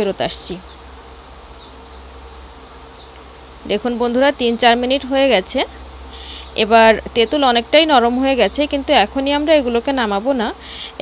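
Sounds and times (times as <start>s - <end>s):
woman speaking: 0.0s - 0.7s, 3.6s - 5.8s, 6.4s - 11.0s
low buzzing hum: 0.0s - 11.0s.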